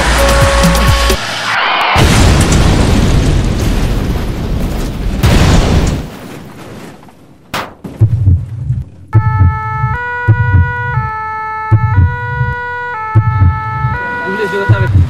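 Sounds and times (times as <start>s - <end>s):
heartbeat thumping: 7.9s - 14.0s, 14.6s - 15.0s
two-tone emergency siren: 9.2s - 15.0s.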